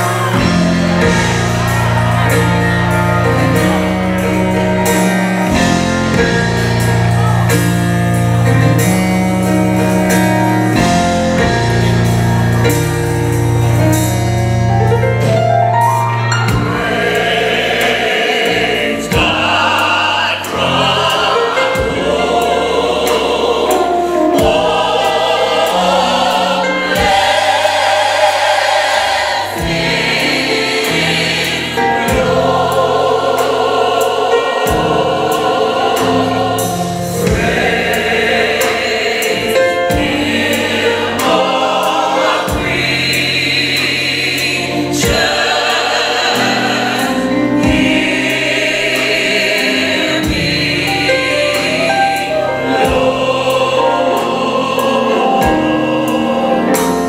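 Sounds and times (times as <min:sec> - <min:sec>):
drum and cymbal hits: 0:00.0 - 0:57.0
gospel choir singing: 0:00.0 - 0:57.0
keyboards: 0:00.0 - 0:57.0.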